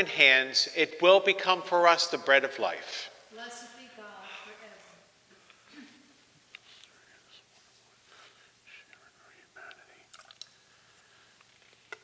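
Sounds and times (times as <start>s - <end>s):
man whispering a prayer: 6.6s - 10.2s.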